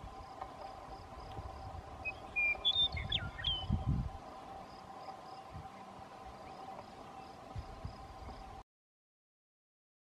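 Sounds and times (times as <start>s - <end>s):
insect calls: 0.0s - 8.6s
songbird singing: 0.0s - 8.6s
faint high chirp: 2.0s - 3.9s.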